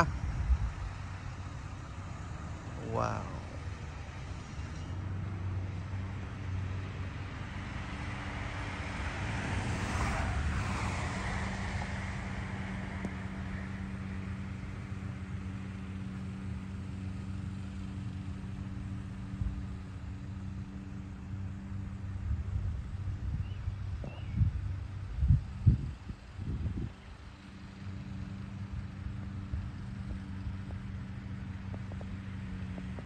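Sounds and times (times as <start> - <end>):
low engine hum: 0.0 - 33.0
vehicle passing by: 0.0 - 33.0.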